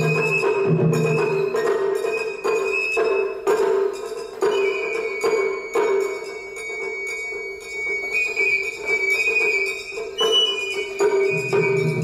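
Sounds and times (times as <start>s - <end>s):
bamboo flute long high notes: 0.0s - 3.6s, 4.4s - 12.0s
taiko drum strikes: 0.0s - 4.8s, 11.1s - 12.0s.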